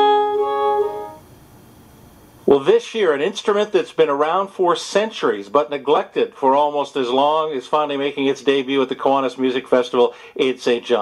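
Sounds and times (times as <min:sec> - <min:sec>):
bowed viola da gamba notes: 0:00.0 - 0:01.3.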